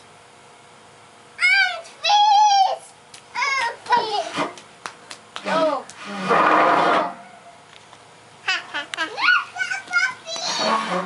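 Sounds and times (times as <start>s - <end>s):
young children calling and squealing: 1.4s - 4.4s, 7.1s - 7.7s, 8.4s - 11.0s.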